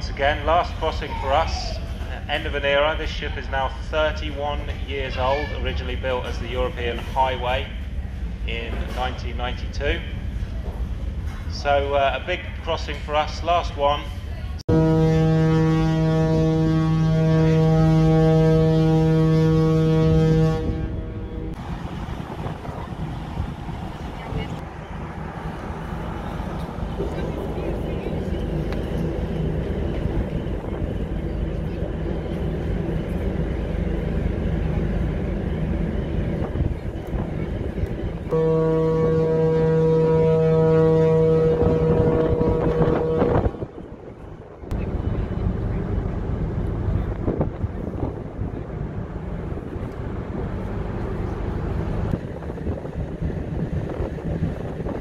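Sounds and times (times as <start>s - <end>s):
wind: 0.0s - 55.0s
ship's horn blast: 14.7s - 21.8s, 38.3s - 43.9s.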